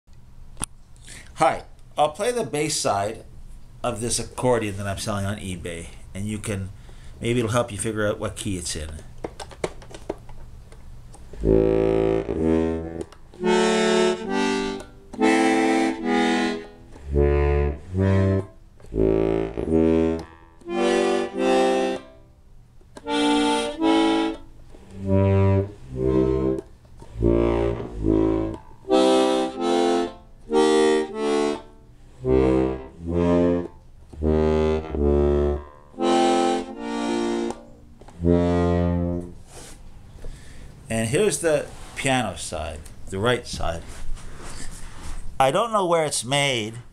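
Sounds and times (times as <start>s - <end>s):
accordion bass notes and chords: 11.4s - 22.4s, 23.0s - 39.4s.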